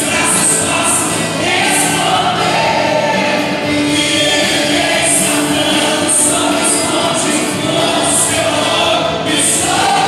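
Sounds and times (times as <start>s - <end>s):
band playing worship song: 0.0s - 10.0s
many voices singing: 0.0s - 10.0s.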